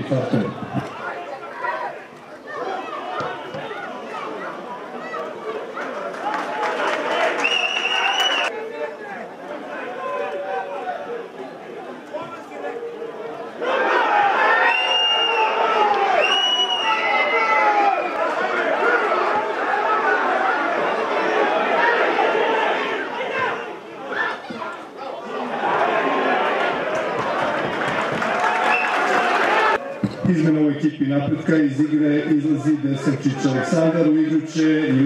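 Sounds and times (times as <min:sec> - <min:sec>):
players shouting: 0:00.0 - 0:30.1.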